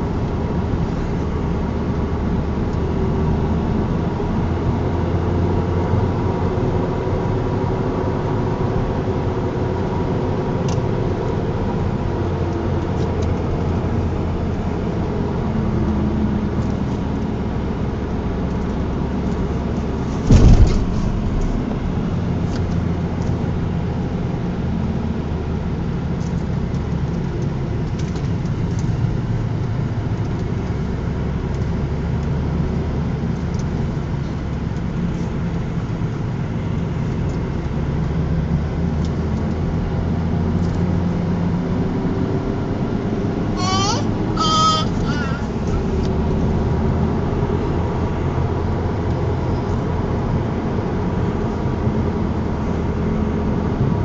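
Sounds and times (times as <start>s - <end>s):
car engine and road noise: 0.0s - 54.0s
loud thump: 20.1s - 23.0s.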